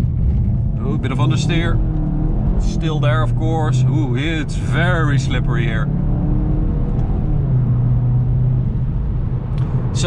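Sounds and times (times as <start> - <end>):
car engine accelerating: 0.0 - 10.0
road noise: 0.0 - 10.0.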